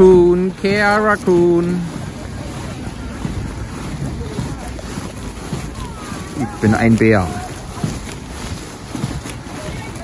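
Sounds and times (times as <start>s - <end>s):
faint voices: 0.0s - 10.0s
wind buffeting microphone: 0.0s - 10.0s.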